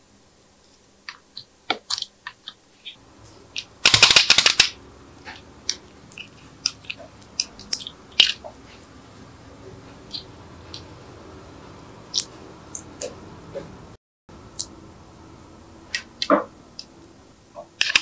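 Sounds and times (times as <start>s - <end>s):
slime crackling: 3.5s - 8.9s.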